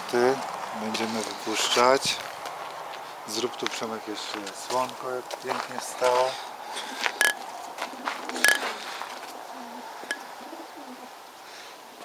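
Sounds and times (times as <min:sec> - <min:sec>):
pigeons cooing: 0:06.3 - 0:12.0.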